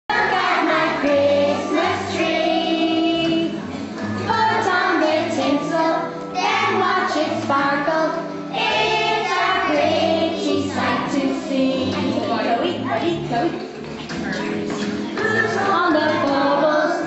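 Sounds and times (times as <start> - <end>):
children singing: 0.1 - 3.6, 4.2 - 12.6, 15.0 - 17.0
musical accompaniment with bass notes: 0.1 - 17.0.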